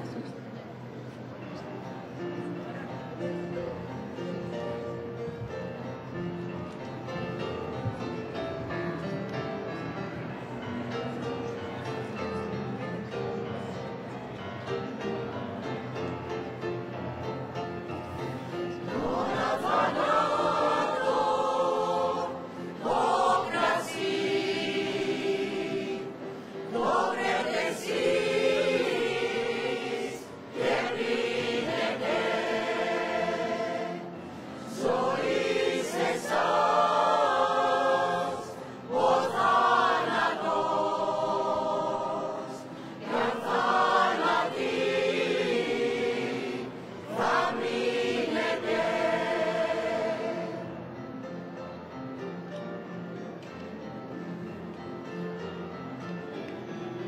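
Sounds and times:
choir singing: 18.4 - 51.0.

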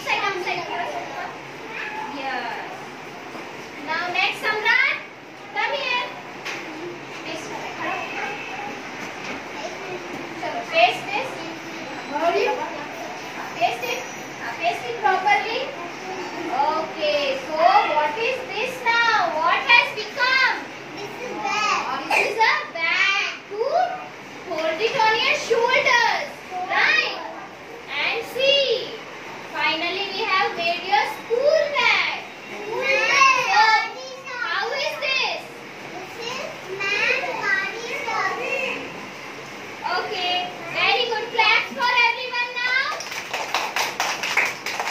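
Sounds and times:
young children chattering: 0.0 - 43.2.

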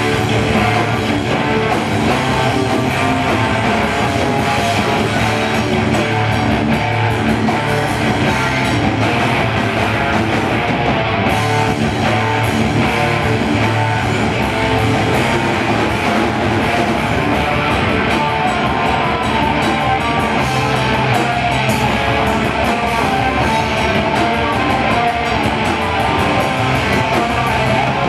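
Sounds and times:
metal band playing live: 0.0 - 28.0.

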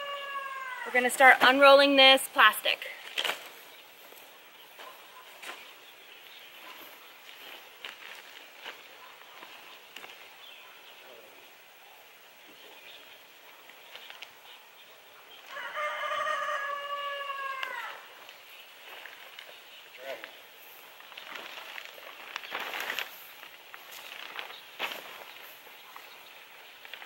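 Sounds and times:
rooster crowing: 0.0 - 0.9, 15.5 - 18.1.

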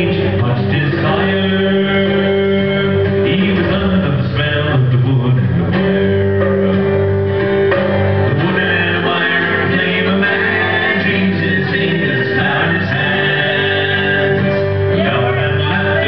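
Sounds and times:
man singing: 0.0 - 6.8, 8.3 - 16.0
folk-rock band playing: 0.0 - 16.0
strummed acoustic guitar: 0.0 - 16.0.

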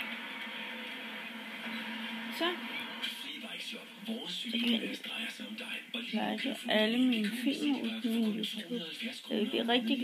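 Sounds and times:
television hiss with low hum: 0.0 - 10.0.

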